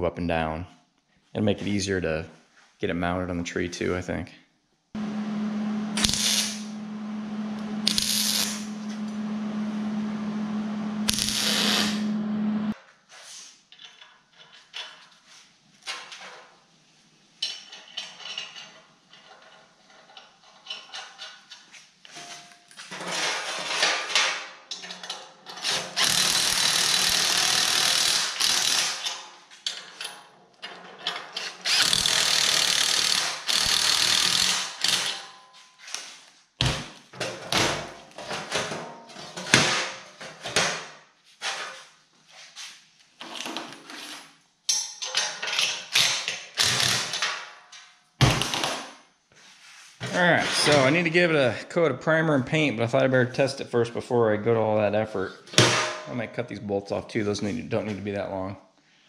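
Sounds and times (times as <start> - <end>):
impact driver running: 5.0 - 12.8, 26.0 - 28.9, 31.7 - 35.0
welder arc crackling: 5.0 - 12.8
welder hum: 5.0 - 12.8
clicks and handling of steel parts: 23.7 - 25.8, 44.7 - 46.5.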